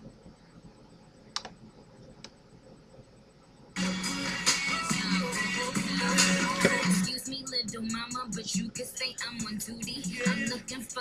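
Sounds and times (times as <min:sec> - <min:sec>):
faint room noise: 0:00.0 - 0:11.0.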